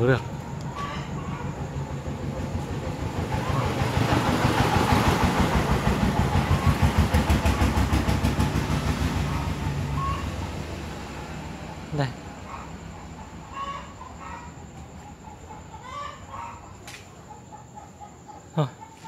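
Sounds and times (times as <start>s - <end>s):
tractor diesel engine idling: 0.0s - 15.8s.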